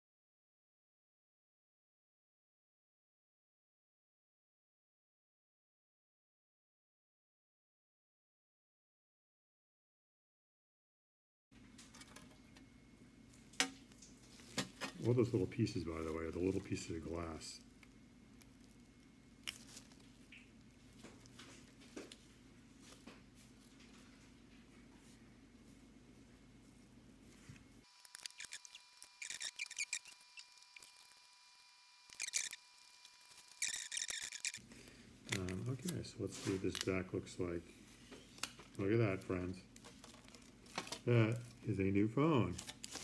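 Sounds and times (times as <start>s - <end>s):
tape peeling and crackling: 17.8s - 22.2s, 27.9s - 34.6s, 38.0s - 41.6s, 42.4s - 43.0s.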